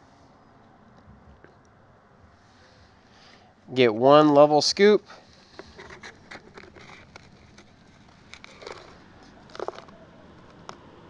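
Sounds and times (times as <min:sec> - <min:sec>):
plastic scoop scraping soil: 0:05.4 - 0:10.8.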